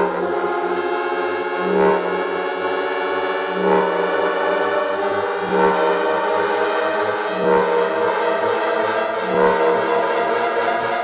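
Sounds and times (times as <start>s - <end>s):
pulsing bass line: 0.0s - 11.0s
sustained synth chords: 0.0s - 11.0s.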